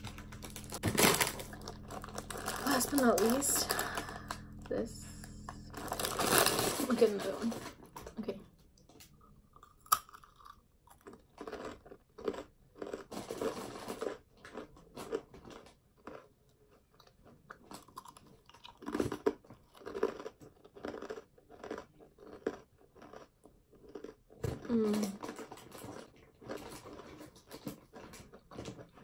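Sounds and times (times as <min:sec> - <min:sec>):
person crunching a snack: 0:00.0 - 0:06.8, 0:08.9 - 0:29.0.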